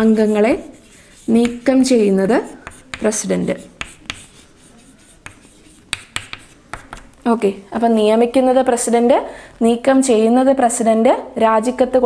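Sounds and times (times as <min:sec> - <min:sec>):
chalk scratching on blackboard: 0:00.0 - 0:07.1
chalk tapping on board: 0:00.0 - 0:07.1.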